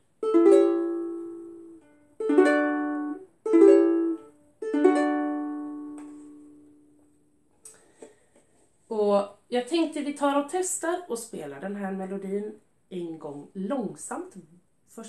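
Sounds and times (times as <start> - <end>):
ukulele chords strummed: 0.0 - 7.3.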